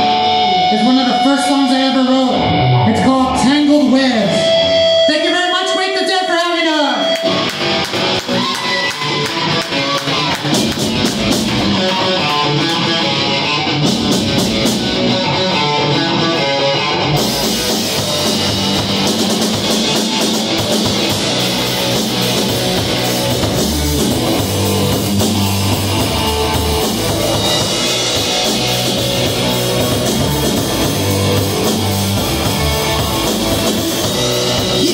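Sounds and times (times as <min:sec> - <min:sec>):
live rock band playing: 0:00.0 - 0:34.9.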